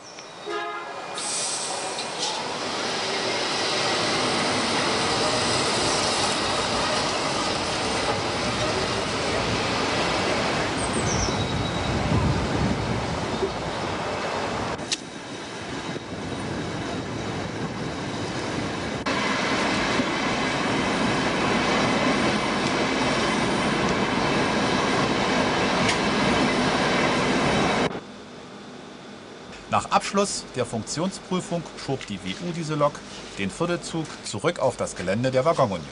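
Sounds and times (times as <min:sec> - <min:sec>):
train wheels running on rails: 0:01.2 - 0:28.0.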